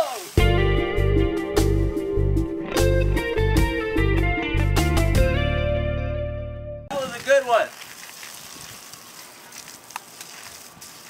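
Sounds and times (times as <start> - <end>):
hose nozzle spraying water: 0.0 - 0.4, 7.0 - 11.0.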